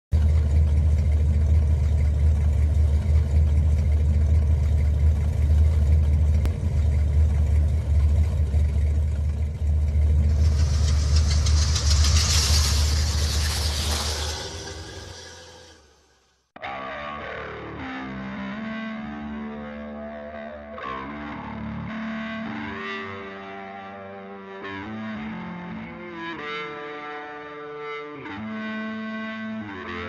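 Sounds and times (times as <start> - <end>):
low engine-like rumble: 0.1 - 15.8
hiss: 10.2 - 15.8.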